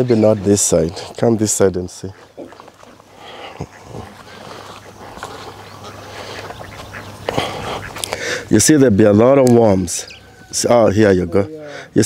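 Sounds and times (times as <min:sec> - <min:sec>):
ducks quacking: 0:00.0 - 0:11.9.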